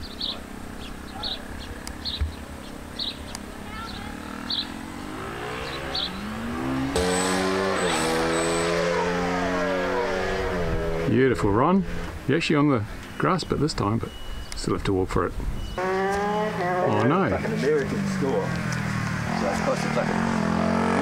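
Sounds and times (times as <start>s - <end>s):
motorbike engines revving: 0.0s - 21.0s.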